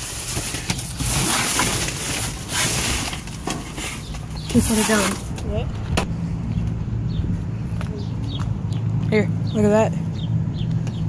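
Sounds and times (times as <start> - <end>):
plastic bags and cardboard rustling: 0.0 - 5.6.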